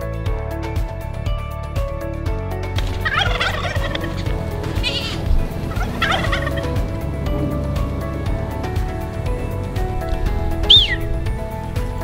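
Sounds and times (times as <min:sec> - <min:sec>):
background music: 0:00.0 - 0:12.0
fowl calling: 0:03.0 - 0:06.7, 0:10.6 - 0:11.1.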